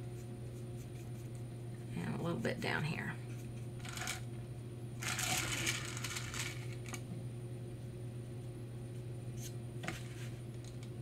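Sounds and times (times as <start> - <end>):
low electrical hum: 0.0 - 11.0
rustling scrape: 9.4 - 10.4.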